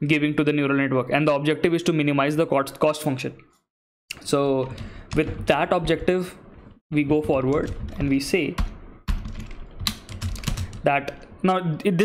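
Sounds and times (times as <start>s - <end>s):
typing on computer keyboard: 7.3s - 11.3s.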